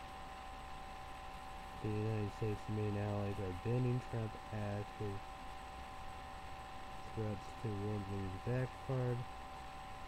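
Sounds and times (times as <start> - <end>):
steady high-pitched whine: 0.0 - 10.0
man speaking in low phrases: 1.8 - 5.2, 7.1 - 9.3.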